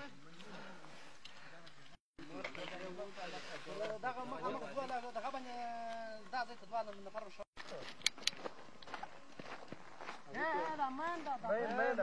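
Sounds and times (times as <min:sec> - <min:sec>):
footsteps on dirt road: 0:06.7 - 0:12.0.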